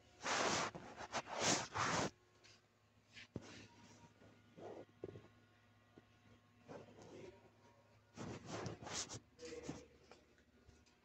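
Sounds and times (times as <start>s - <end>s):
rustling scrapes: 0.2s - 2.2s, 8.1s - 9.9s.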